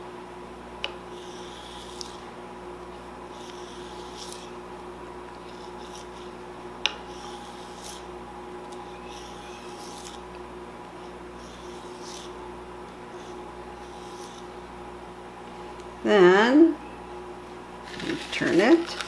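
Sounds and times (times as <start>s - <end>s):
faint hum: 0.0s - 19.0s.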